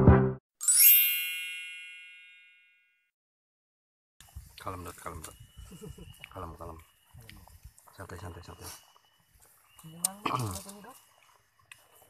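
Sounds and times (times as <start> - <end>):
background music with a beat: 0.0 - 0.4
bright bell-like ding: 0.6 - 2.9.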